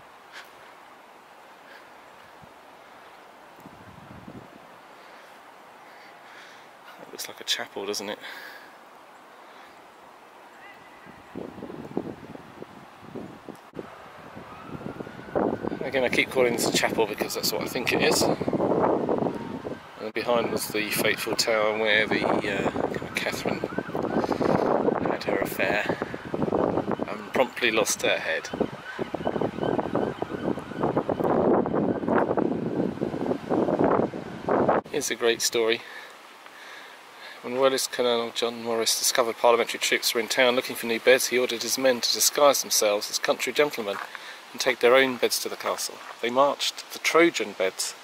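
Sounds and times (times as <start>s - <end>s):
wind buffeting microphone: 3.6s - 4.7s, 10.7s - 35.0s.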